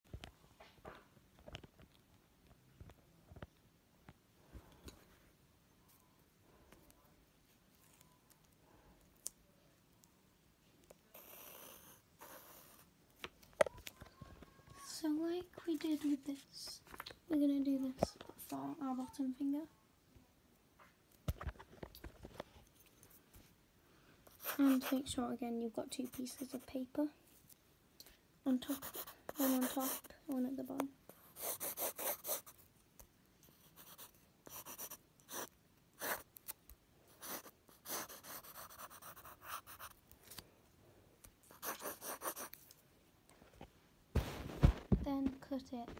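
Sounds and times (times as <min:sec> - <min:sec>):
pencil scratching on paper: 0:24.3 - 0:25.2, 0:25.8 - 0:27.0, 0:28.5 - 0:30.1, 0:31.1 - 0:32.6, 0:33.5 - 0:36.3, 0:37.1 - 0:40.0, 0:41.4 - 0:42.6.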